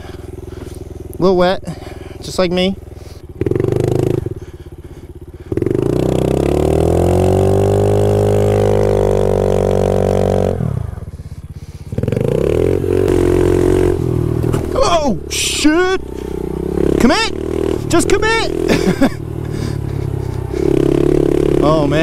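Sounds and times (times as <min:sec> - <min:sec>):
motorbike engine revving: 0:00.0 - 0:22.0.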